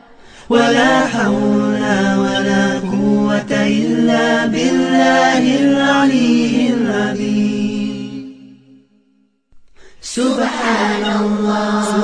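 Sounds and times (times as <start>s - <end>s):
person chanting melodically: 0.1s - 8.5s, 10.0s - 12.0s.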